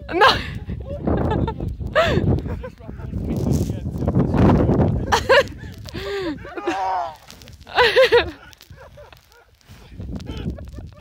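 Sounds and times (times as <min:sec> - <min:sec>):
high voices whooping and laughing: 0:05.0 - 0:11.0.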